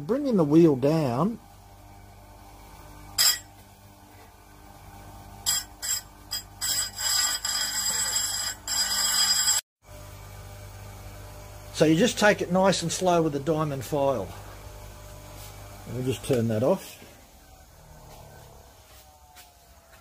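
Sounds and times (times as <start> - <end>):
grinder motor hum: 0.2 - 20.0
file scraping grinding wheel: 5.4 - 9.6.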